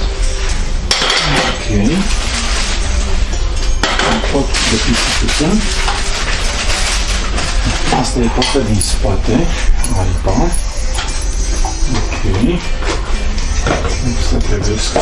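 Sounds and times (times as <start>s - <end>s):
plastic packaging crinkling: 1.6s - 3.2s, 4.1s - 10.5s.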